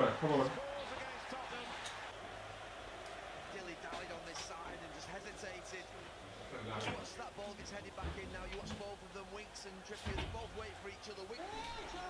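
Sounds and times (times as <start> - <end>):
television sports commentary: 0.0 - 12.0.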